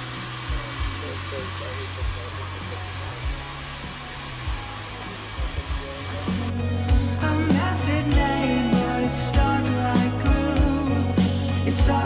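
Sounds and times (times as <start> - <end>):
hair dryer blowing: 0.0 - 6.6
background music with bass thumps: 0.0 - 12.0.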